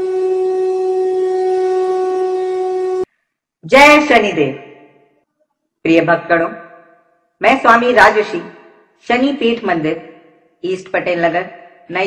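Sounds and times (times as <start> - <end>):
long held horn-like note: 0.0 - 3.1.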